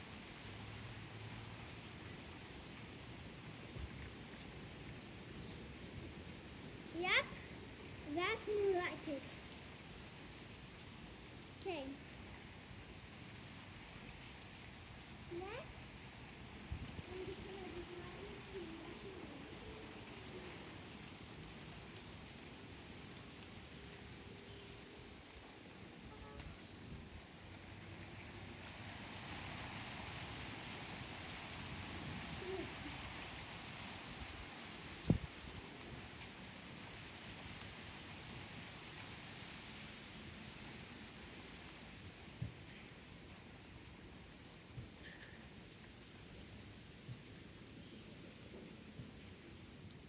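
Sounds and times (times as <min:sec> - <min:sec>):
wind rustling foliage: 0:00.0 - 0:50.0.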